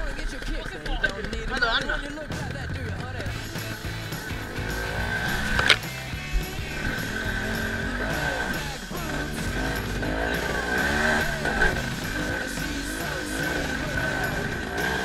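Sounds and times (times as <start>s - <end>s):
dirt bike engine revving: 0.0s - 15.0s.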